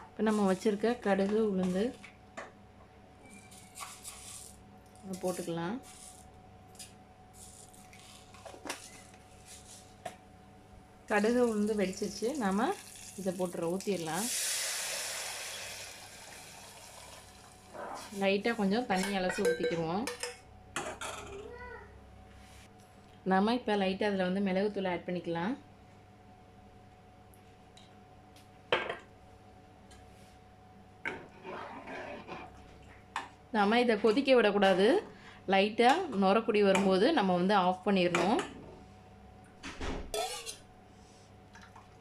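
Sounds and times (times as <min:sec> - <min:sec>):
ladle clinking against metal pot: 0:19.0 - 0:20.4, 0:40.2 - 0:40.6
metal spoon scraping a bowl: 0:40.2 - 0:40.6.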